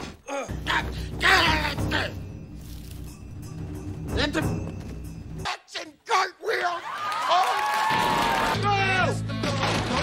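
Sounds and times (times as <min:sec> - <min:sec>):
man yelling: 0:05.5 - 0:07.6, 0:08.5 - 0:09.3.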